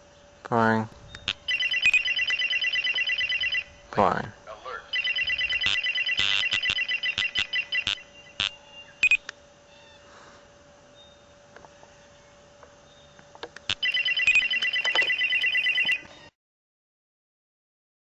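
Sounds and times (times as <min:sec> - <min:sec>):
rapid electronic beeping: 0:01.3 - 0:03.7, 0:04.9 - 0:09.2, 0:13.7 - 0:16.0.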